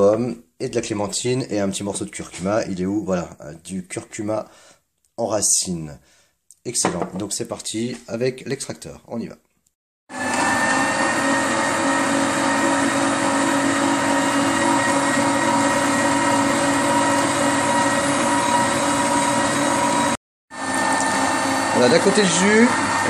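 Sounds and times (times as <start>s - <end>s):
juicer motor humming: 10.1s - 23.0s.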